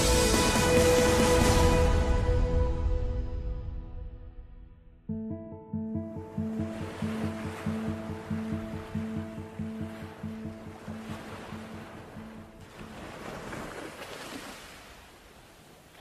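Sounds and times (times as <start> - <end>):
music of repeated chords: 5.1 - 11.0
ocean surf washing: 6.0 - 16.0.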